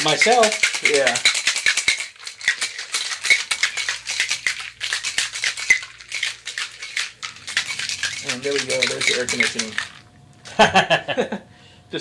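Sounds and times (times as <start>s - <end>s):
ice rattling in metal shaker: 0.0s - 10.1s
air conditioning hum: 0.0s - 12.0s.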